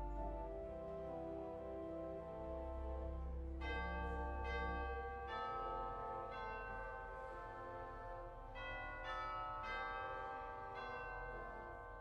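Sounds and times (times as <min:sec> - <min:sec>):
pipe organ sustained chords: 0:00.0 - 0:12.0.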